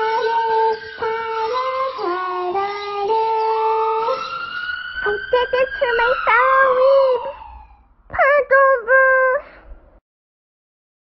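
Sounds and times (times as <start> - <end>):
person singing long notes: 0.0 - 4.2, 5.0 - 7.4.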